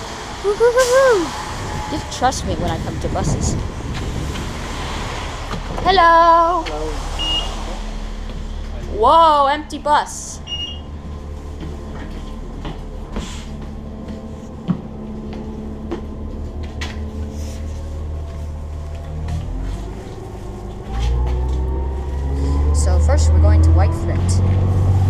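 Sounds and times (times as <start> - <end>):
bus engine drone: 0.0 - 25.0
engine whine rising in pitch: 0.0 - 25.0.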